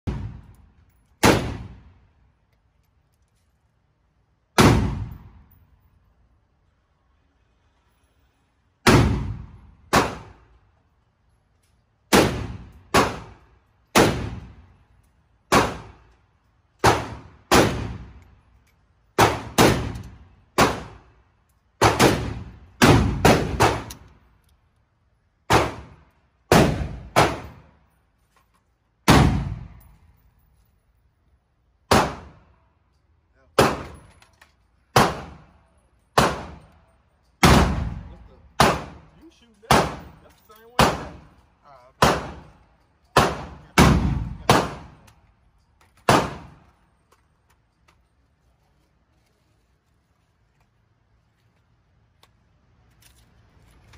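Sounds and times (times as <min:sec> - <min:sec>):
rifle single shots: 0:01.2 - 0:01.9, 0:04.6 - 0:05.4, 0:08.8 - 0:10.4, 0:12.1 - 0:14.6, 0:15.5 - 0:16.0, 0:19.2 - 0:21.0, 0:21.8 - 0:24.1, 0:29.1 - 0:29.8, 0:31.9 - 0:32.4, 0:33.6 - 0:34.0, 0:37.4 - 0:40.2, 0:40.8 - 0:41.3, 0:42.0 - 0:45.1, 0:46.1 - 0:46.6.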